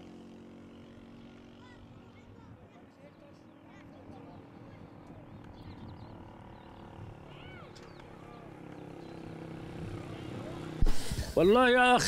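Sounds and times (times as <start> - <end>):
distant voices: 0.3 - 12.0.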